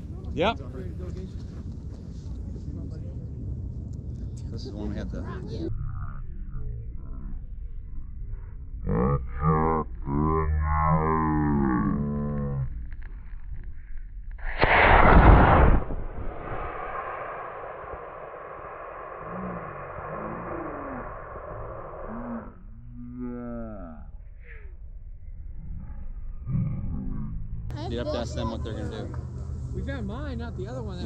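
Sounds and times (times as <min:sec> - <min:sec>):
rocket motor rushing hiss: 0:14.4 - 0:22.3
people talking: 0:27.8 - 0:29.2.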